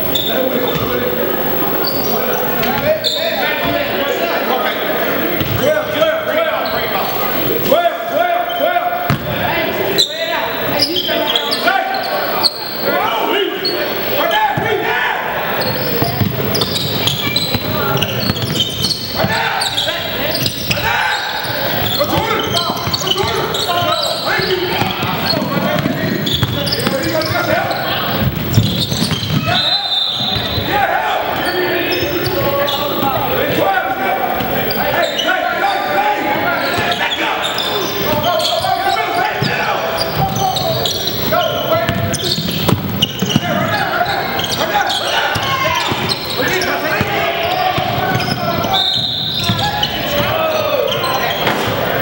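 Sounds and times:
voices in a gym hall: 0.0 - 52.0.

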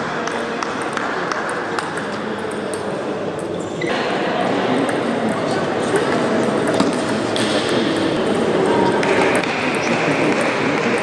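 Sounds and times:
murmur of voices: 0.0 - 11.0
table tennis balls clicking: 0.2 - 3.5, 4.8 - 11.0.

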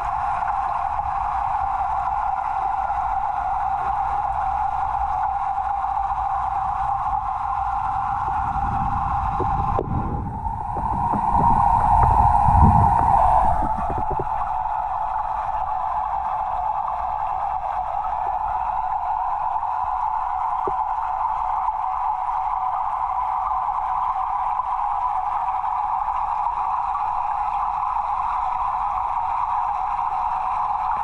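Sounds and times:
underwater hum in fish tank: 0.0 - 31.0
rumbling and knocks: 9.3 - 14.6.

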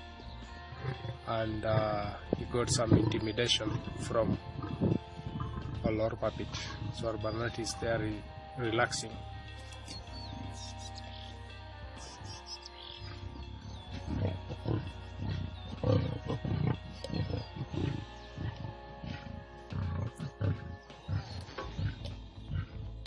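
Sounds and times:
background music: 0.0 - 23.0
lions growling: 0.7 - 7.6, 12.1 - 23.0.

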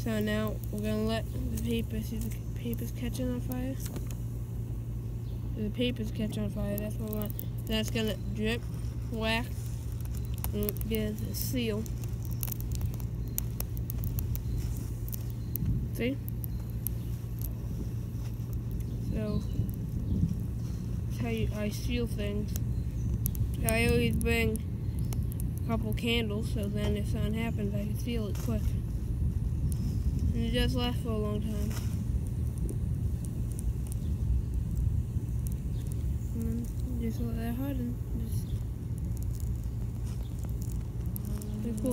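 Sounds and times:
faint crackles of burning crayon: 0.0 - 41.9
low background rumble: 0.0 - 41.9
faint high ticks: 6.4 - 27.7, 31.4 - 37.0
wind buffeting microphone: 6.7 - 16.4, 17.6 - 41.9.

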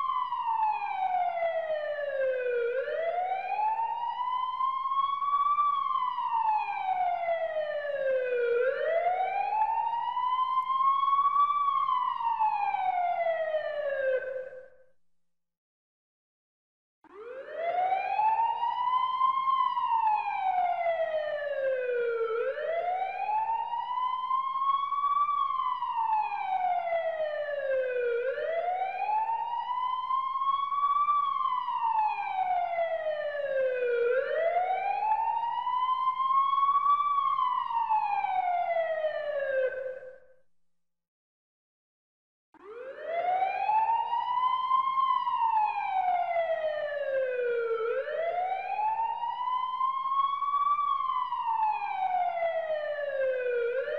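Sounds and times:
siren wailing: 17.1 - 40.2, 42.6 - 53.9.

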